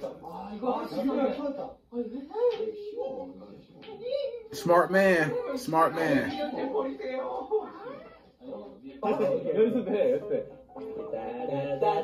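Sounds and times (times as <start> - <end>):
voices from video playback: 0.0 - 12.0.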